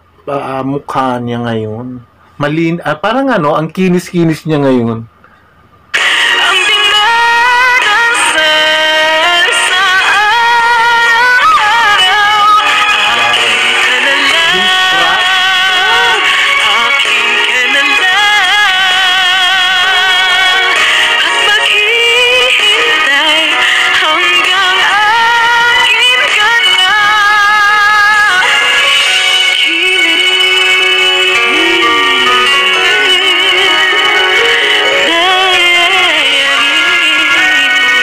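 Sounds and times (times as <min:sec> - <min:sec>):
woman singing pop ballad: 0:06.0 - 0:12.7, 0:13.6 - 0:38.0
musical accompaniment: 0:09.5 - 0:18.4, 0:28.4 - 0:38.0.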